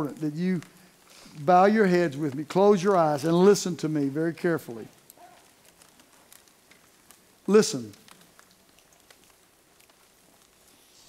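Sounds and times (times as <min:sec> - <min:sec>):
faint ticks: 0:05.0 - 0:11.0.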